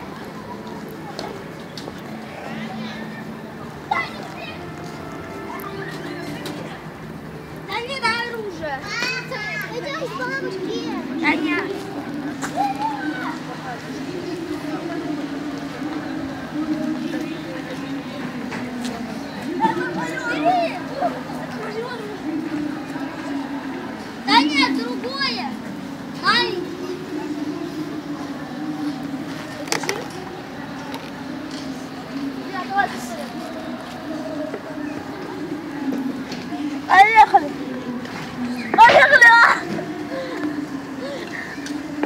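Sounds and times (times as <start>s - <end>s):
children calling and chattering: 0.0s - 42.0s
child shouting: 38.8s - 39.6s.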